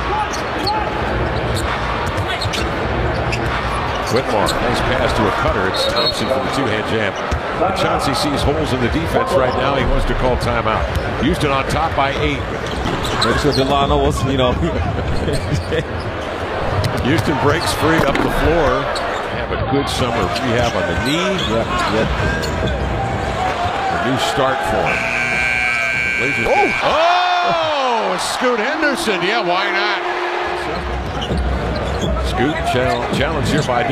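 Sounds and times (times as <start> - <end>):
arena crowd noise: 0.0 - 33.9.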